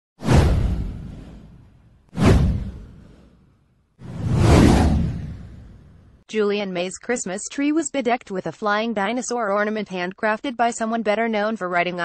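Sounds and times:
whoosh sound effect: 0.2 - 3.4, 4.0 - 6.1
deep rumble: 4.0 - 6.2.

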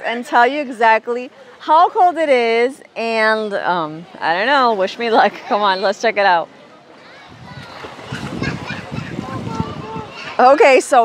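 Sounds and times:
distant crowd chatter: 0.0 - 11.0
wind rumbling on microphone: 7.1 - 11.0.

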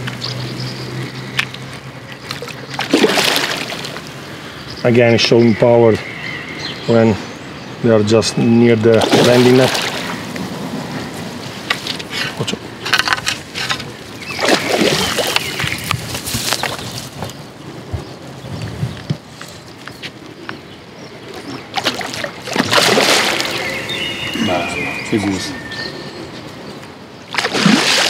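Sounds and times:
fish thrashing and splashing: 2.2 - 4.1, 13.8 - 15.7, 21.7 - 23.8, 27.3 - 28.0.

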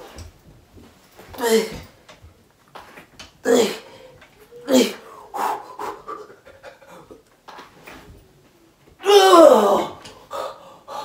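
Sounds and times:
man panting: 3.4 - 7.3, 10.1 - 11.0.

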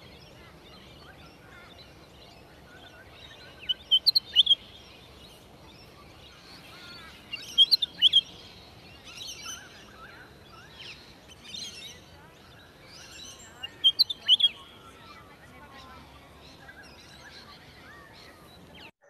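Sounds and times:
soft bird chatter: 0.0 - 19.0
bird high sharp chirps: 6.5 - 8.4, 13.0 - 15.2.

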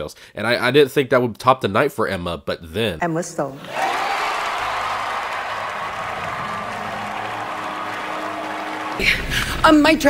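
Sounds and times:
audience applauding: 3.6 - 9.4.

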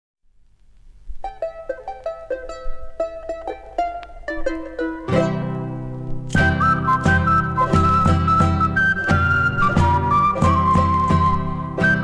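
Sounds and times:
plucked string instrument: 1.1 - 12.0
strummed chord with bass: 2.0 - 12.0.

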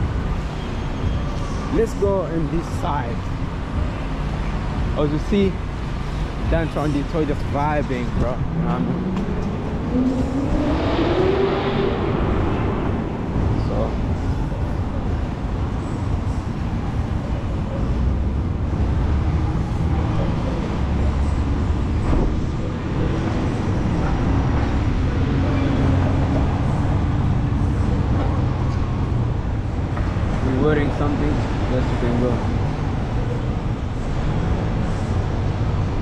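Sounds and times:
cars driving through traffic: 0.0 - 36.0.

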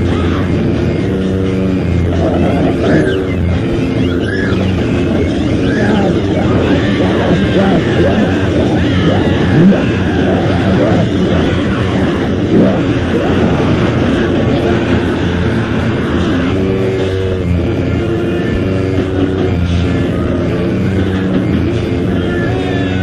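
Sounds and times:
distorted metal guitar: 0.0 - 23.0
drums: 0.0 - 23.0
sustained guitar chords: 0.0 - 23.0.

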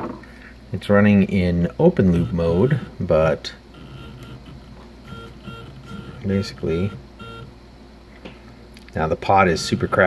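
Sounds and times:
stepper motor whining: 1.9 - 7.6, 9.1 - 10.0.

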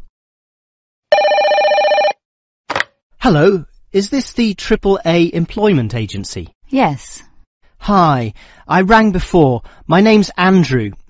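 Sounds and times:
warbling electronic telephone ring: 1.1 - 2.2.

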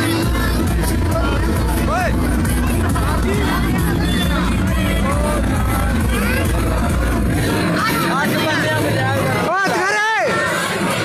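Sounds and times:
fairground ride rumbling: 0.0 - 11.0.

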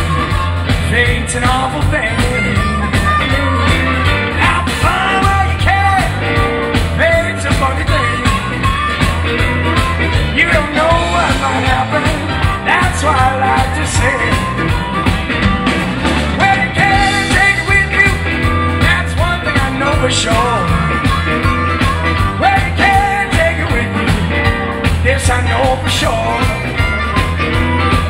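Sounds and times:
drum kit: 0.0 - 28.0
electric bass: 0.0 - 28.0
electric guitar: 0.0 - 28.0.

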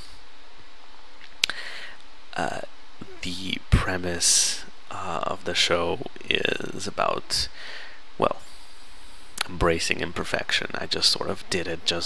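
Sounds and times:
computer fan noise: 0.0 - 12.0.

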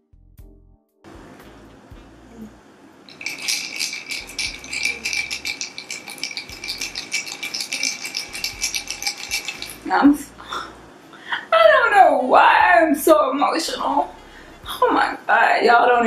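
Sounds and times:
glass ringing faintly: 3.1 - 9.9
ice cubes clinking in glass: 3.1 - 10.0.

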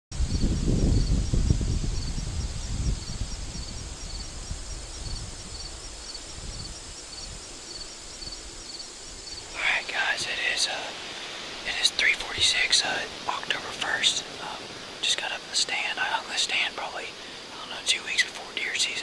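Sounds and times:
wind buffeting microphone: 0.1 - 15.3
insects chirping: 0.2 - 19.0
man's voice: 9.5 - 11.0, 11.6 - 19.0.

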